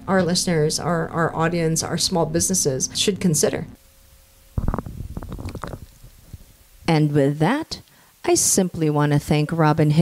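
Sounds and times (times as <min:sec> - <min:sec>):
woman speaking: 0:00.0 - 0:03.8, 0:06.9 - 0:10.0.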